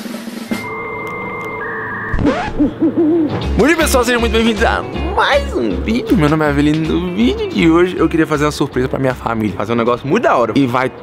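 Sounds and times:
held electronic chord: 0.5 - 6.0.

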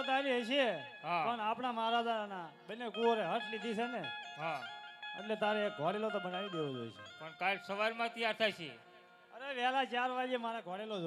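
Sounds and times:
held instrument notes: 0.0 - 9.8.

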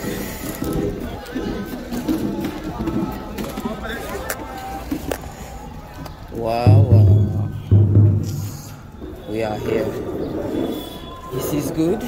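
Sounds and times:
deep ringing drum strokes: 6.7 - 8.8.

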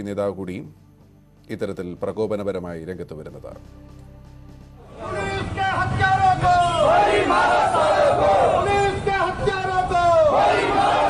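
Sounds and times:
crowd shouting in unison: 4.8 - 9.0, 9.9 - 11.0.

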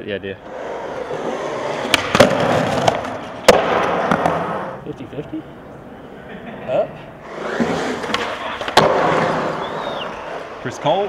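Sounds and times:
skateboard wheels rolling on concrete: 0.4 - 4.8, 7.0 - 11.0
skateboard clacks: 1.8 - 4.6, 7.6 - 10.4.

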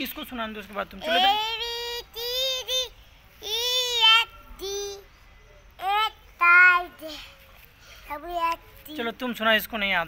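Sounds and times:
young child singing: 1.2 - 5.0, 5.8 - 7.3.

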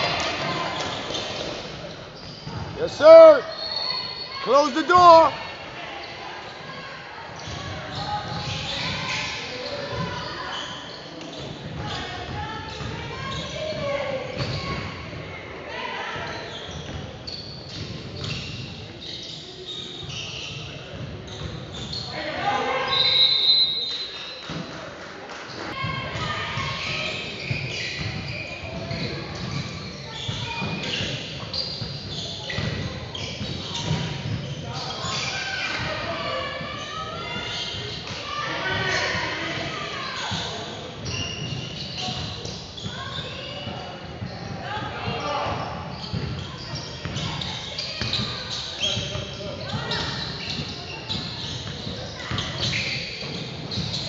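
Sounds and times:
echoing indistinct voices: 0.0 - 10.5
referee's whistle: 3.0 - 5.3, 22.8 - 24.2.

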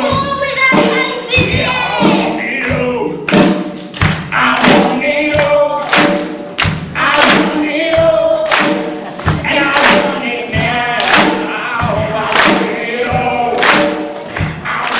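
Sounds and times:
voices singing in chorus: 0.0 - 3.3, 4.3 - 6.3, 7.0 - 14.9
heavy drum beats: 0.0 - 14.9
rock accompaniment: 0.0 - 14.9.

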